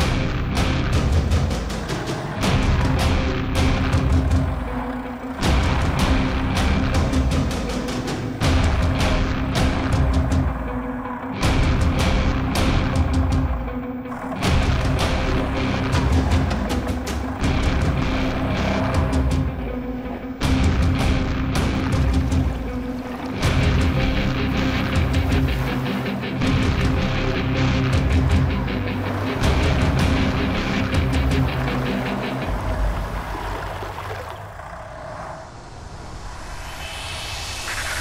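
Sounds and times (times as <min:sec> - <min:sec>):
background music with heavy bass: 0:00.0 - 0:33.2.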